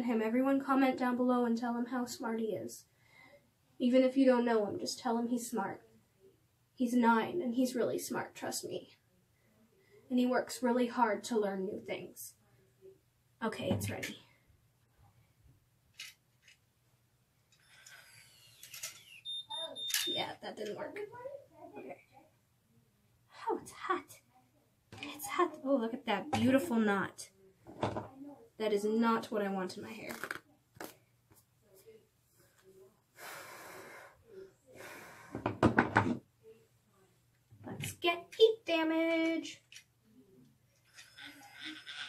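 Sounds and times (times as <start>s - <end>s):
knocks and thumps: 13.6s - 14.2s, 27.6s - 28.1s, 35.4s - 36.2s.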